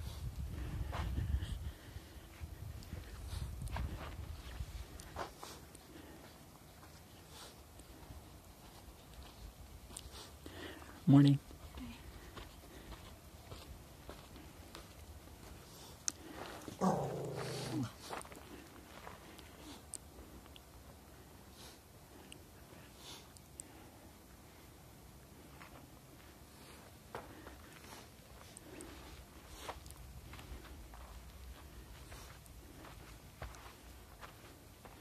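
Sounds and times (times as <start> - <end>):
wind rumbling on microphone: 0.0 - 5.0
low-pitched vocal sound: 16.8 - 18.0.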